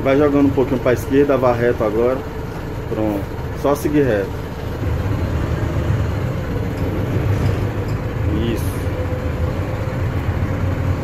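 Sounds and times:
bus diesel engine rumble: 0.0s - 11.0s
steady hum: 0.0s - 11.0s.

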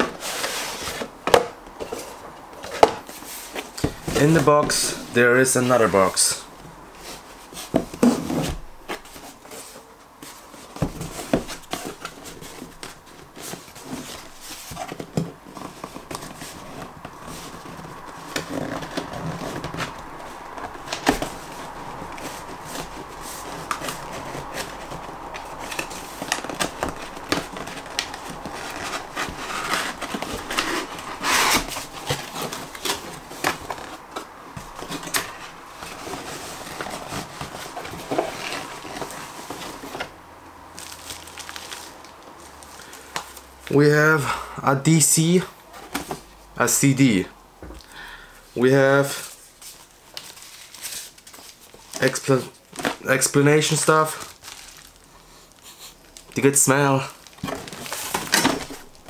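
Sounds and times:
cardboard box being handled: 0.0s - 40.2s, 57.0s - 59.0s.

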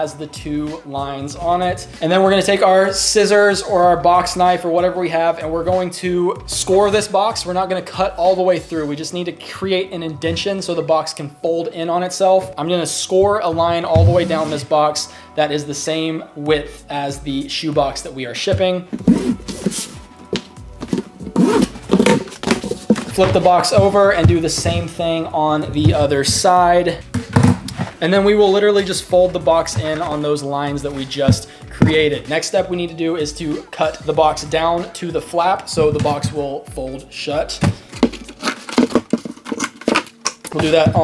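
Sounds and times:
background music: 0.0s - 41.0s
cardboard rustling: 18.6s - 28.1s, 37.6s - 41.0s.

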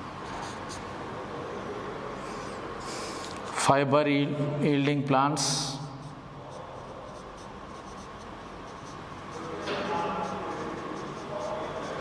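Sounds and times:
marker pen writing on whiteboard: 5.5s - 12.0s.

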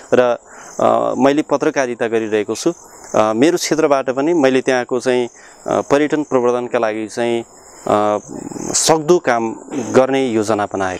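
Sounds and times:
insects chirring: 0.0s - 10.9s
man speaking: 0.0s - 10.9s.

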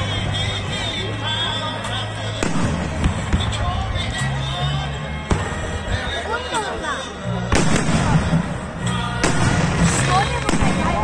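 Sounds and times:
fireworks bang: 2.4s - 3.7s, 7.5s - 8.5s, 9.2s - 11.0s
faint fireworks pops: 2.4s - 3.8s, 7.5s - 8.5s, 9.2s - 11.0s.

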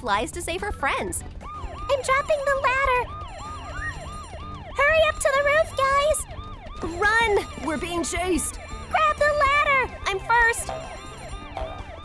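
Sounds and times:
siren in fast yelp: 0.6s - 12.0s
whistle-like tone gliding upward: 3.3s - 4.4s.

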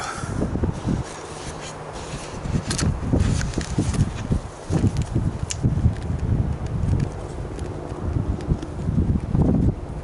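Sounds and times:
sharp clicks: 4.9s - 8.8s.

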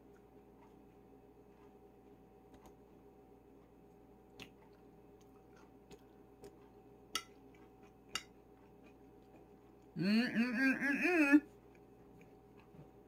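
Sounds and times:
low room hum: 0.0s - 13.0s
fork clicking against bowl: 7.1s - 7.4s, 8.1s - 8.3s.

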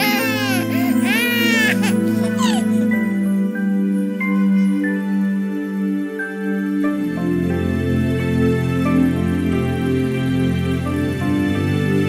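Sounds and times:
baby crying: 0.0s - 3.2s
gentle sustained music: 0.0s - 12.0s.

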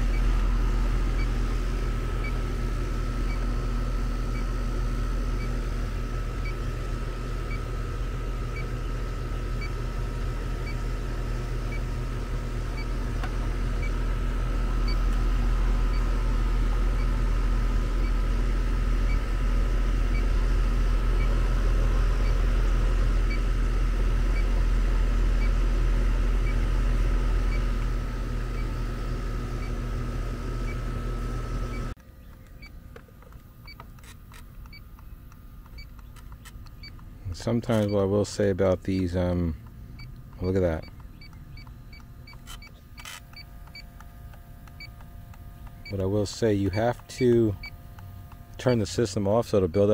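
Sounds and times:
leak detector ticking: 0.0s - 29.9s, 31.7s - 49.9s
air conditioner unit humming: 0.0s - 49.9s.

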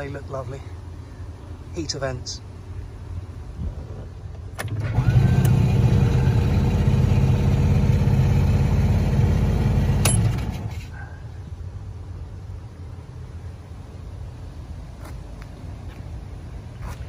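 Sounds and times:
car engine running: 3.6s - 11.0s
ignition click: 4.3s - 5.6s.

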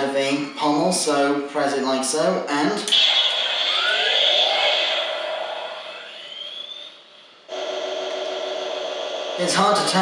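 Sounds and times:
steady electronic hum: 0.0s - 10.0s
toy sword whoosh with rising whine: 2.9s - 9.5s.

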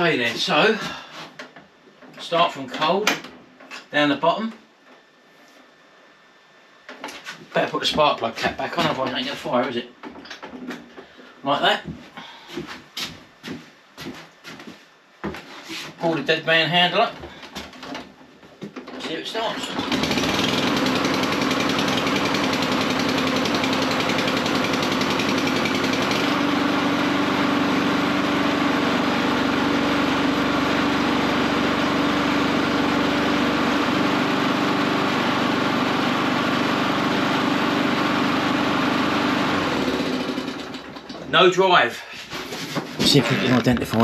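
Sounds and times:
lawn mower engine pull-started: 18.9s - 41.3s.

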